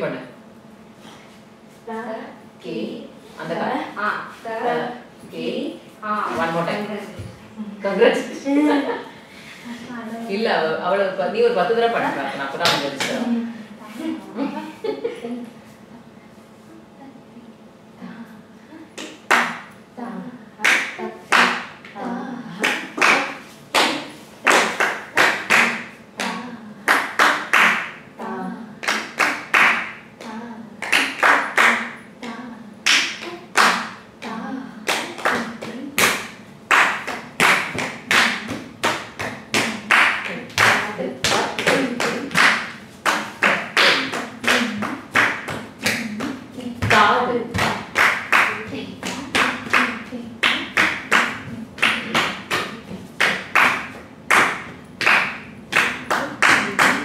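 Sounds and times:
person reciting rhythmic syllables: 0:16.7 - 0:57.0.

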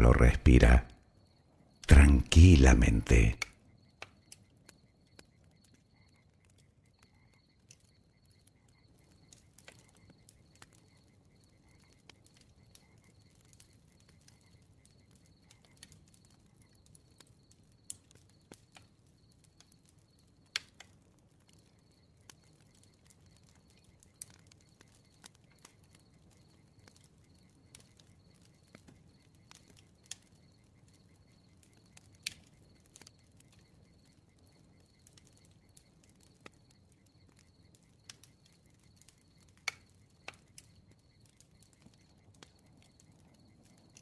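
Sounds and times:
campfire crackling: 0:00.0 - 0:44.0.

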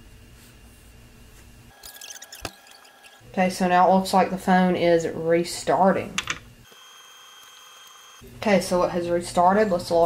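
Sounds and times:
high-pitched electronic whine: 0:06.7 - 0:08.2.

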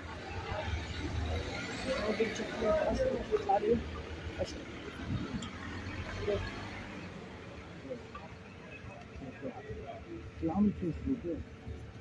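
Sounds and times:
faint voices: 0:00.0 - 0:12.0
street traffic: 0:00.0 - 0:12.0
vehicle engine rumble: 0:00.0 - 0:12.0.

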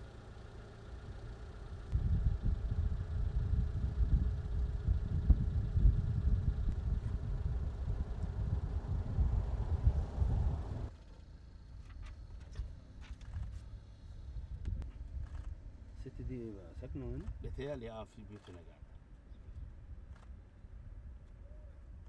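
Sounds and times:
wind buffeting microphone: 0:01.9 - 0:10.9.

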